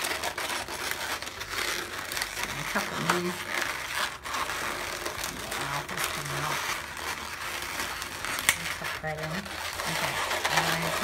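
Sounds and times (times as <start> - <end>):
balloons rubbing and squeaking: 0.0 - 11.0.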